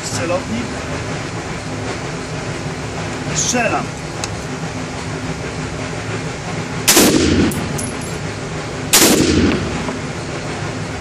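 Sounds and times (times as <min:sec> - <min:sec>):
rifle shots: 0:06.8 - 0:07.8, 0:08.9 - 0:09.8.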